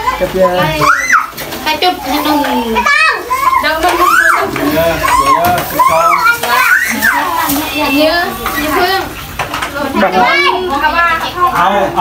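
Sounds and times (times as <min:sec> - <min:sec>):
children talking and shouting: 0:00.0 - 0:12.0.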